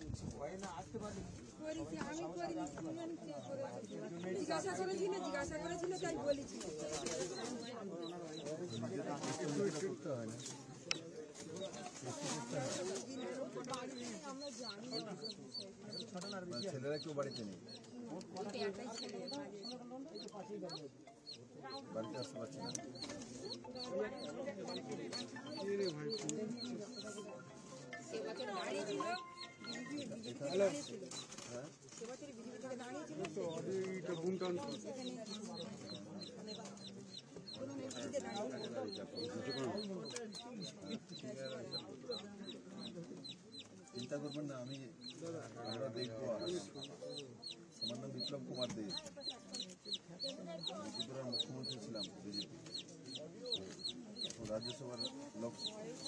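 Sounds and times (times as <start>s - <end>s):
people talking: 0.0s - 31.4s, 32.0s - 56.0s
chick peeping: 11.6s - 27.3s, 33.5s - 56.0s.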